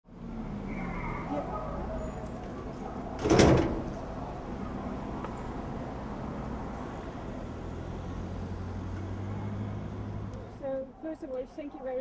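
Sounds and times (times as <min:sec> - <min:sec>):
street background: 0:00.0 - 0:12.0
door sliding: 0:03.1 - 0:04.1.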